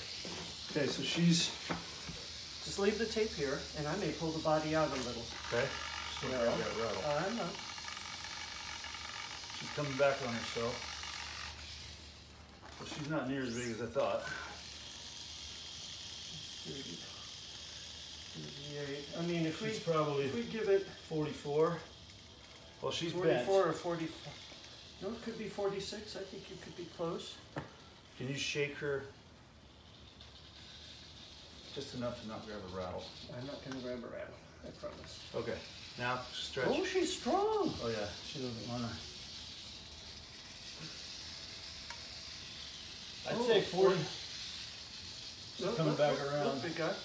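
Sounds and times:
rattlesnake rattling: 0:00.0 - 0:47.0.

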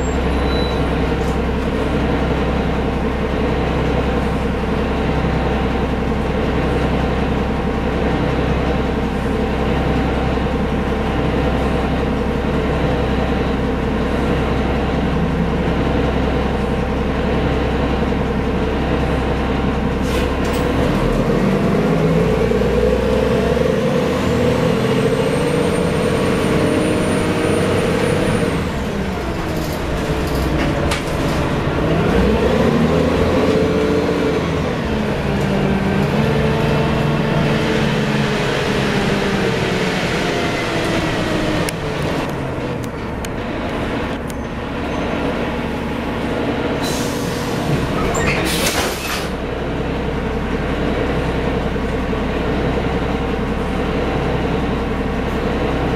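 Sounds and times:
bus diesel engine: 0:00.0 - 0:55.9.

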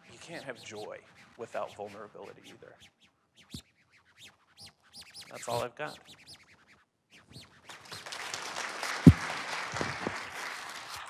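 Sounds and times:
short knock: 0:09.0 - 0:09.2.

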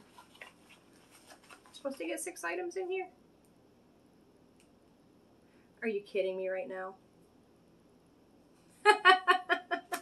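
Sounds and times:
woman laughing: 0:08.9 - 0:10.0.

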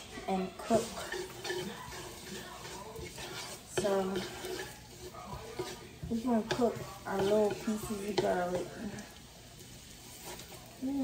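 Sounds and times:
garlic sizzling in oil: 0:00.0 - 0:11.0.

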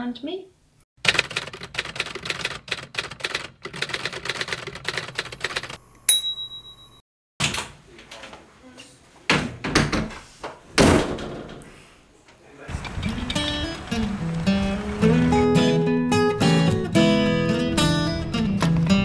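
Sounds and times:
typewriter keys clacking: 0:01.0 - 0:05.8
ringing bell ding: 0:06.1 - 0:07.0.

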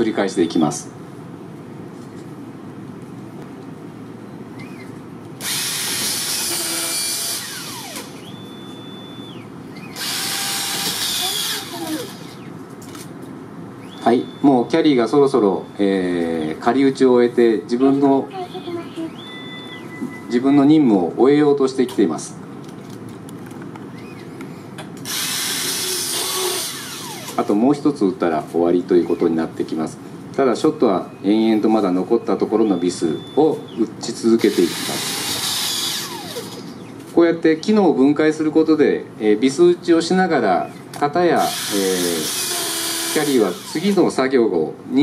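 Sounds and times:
power screwdriver whirring: 0:04.6 - 0:08.4, 0:09.8 - 0:12.5, 0:25.0 - 0:27.6, 0:34.4 - 0:36.8, 0:41.4 - 0:44.0.

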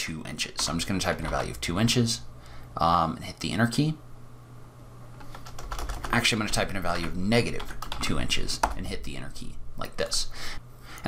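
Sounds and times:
low steady hum: 0:00.0 - 0:11.0
keyboard keys clicking: 0:05.2 - 0:06.2, 0:07.0 - 0:08.8.

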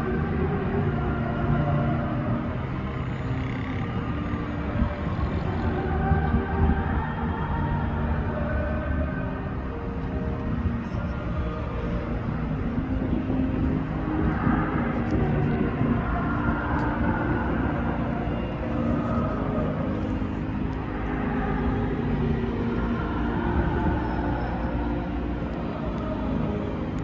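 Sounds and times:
distant muffled concert music: 0:00.0 - 0:27.0
steady low rumble: 0:00.0 - 0:27.0.

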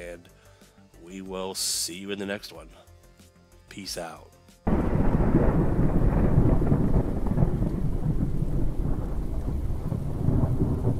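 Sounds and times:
low rumble of thunder: 0:04.7 - 0:10.9
rain: 0:04.7 - 0:10.9.

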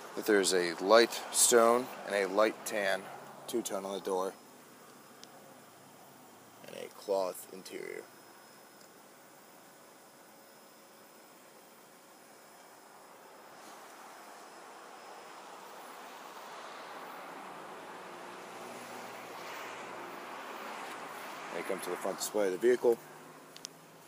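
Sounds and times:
outdoor background hiss: 0:00.0 - 0:24.0.

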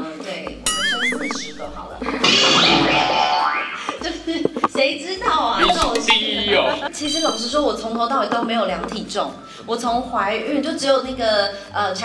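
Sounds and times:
background music: 0:00.0 - 0:12.0
group laughing: 0:00.7 - 0:01.9.

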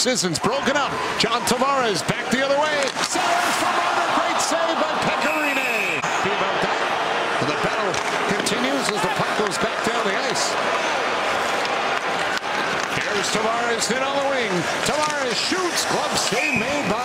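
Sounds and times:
crowd voices in arena stands: 0:00.0 - 0:17.0
sticks and puck clacking on ice: 0:02.6 - 0:03.7, 0:07.9 - 0:16.8.

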